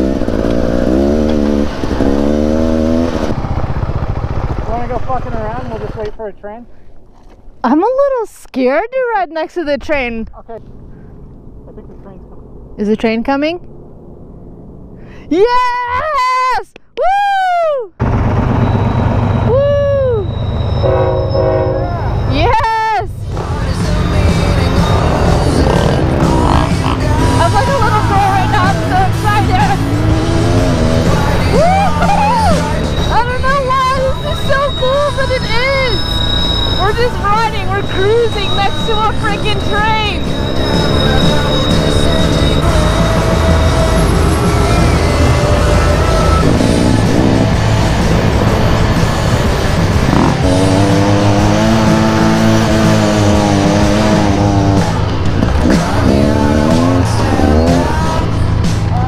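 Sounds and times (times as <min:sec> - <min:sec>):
dirt bike engine: 0:00.0 - 0:07.4, 0:18.0 - 0:59.0
diesel locomotives rumbling past: 0:18.0 - 0:22.5, 0:23.1 - 0:59.0
locomotive horn blast: 0:20.6 - 0:22.3
steady rush of noise: 0:23.1 - 0:59.0.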